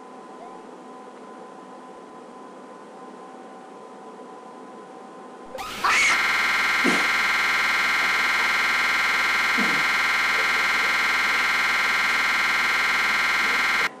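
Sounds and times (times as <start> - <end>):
loud repeating electronic buzz: 5.5 - 14.0.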